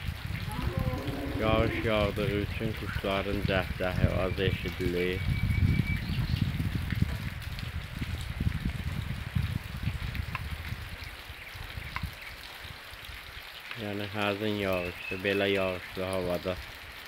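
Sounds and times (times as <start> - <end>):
rain on trees and roofs: 0.0 - 17.0
low rumble: 0.4 - 2.9.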